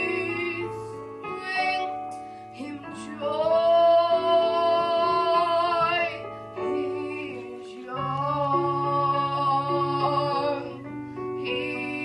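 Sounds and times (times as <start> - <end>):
backing music: 0.0 - 12.0.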